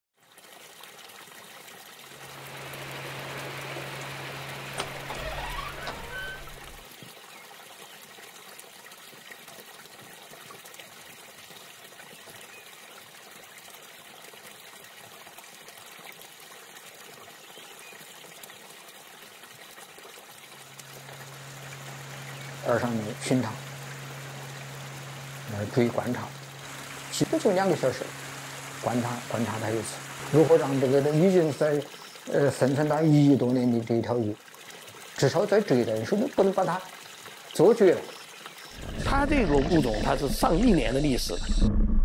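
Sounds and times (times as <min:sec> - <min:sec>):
water trickling: 0:00.2 - 0:41.4
low steady hum: 0:20.6 - 0:32.3, 0:38.7 - 0:42.0.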